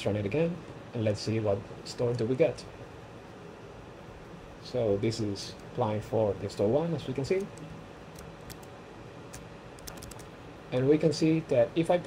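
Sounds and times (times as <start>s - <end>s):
mouse and keyboard clicks: 9.3s - 10.3s.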